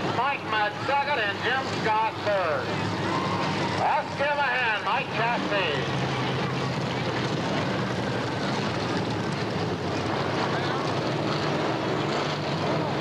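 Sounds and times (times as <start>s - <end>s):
voices: 0.0s - 7.6s
race car engines rumbling: 0.0s - 13.0s.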